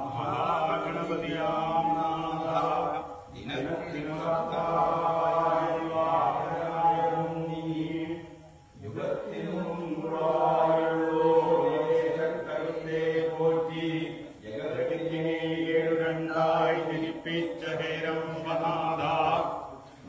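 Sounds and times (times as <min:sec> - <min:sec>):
men chanting a ritual song: 0:00.0 - 0:20.0.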